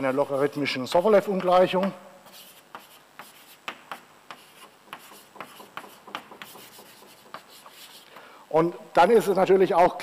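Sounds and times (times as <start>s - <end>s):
chalk scratching on chalkboard: 0.2s - 8.2s.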